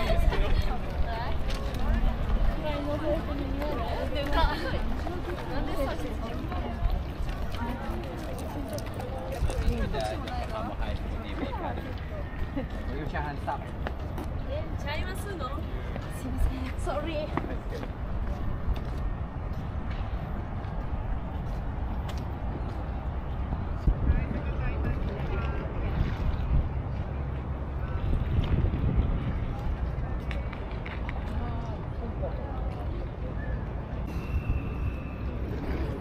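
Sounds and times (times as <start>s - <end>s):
passers-by talking: 0.0s - 36.0s
wind rumble on microphone: 15.4s - 36.0s.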